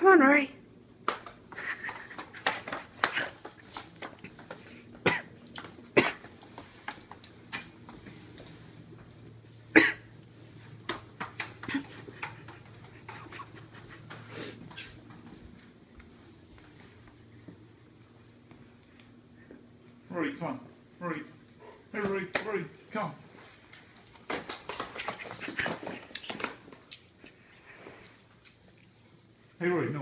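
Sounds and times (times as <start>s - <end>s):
dog paws scrabbling on wooden floor: 1.0s - 9.5s, 10.3s - 19.2s, 21.3s - 29.2s.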